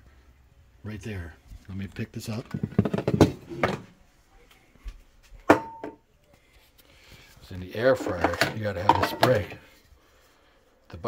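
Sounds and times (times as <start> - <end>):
metal can knocking on hard surface: 2.6 - 3.8.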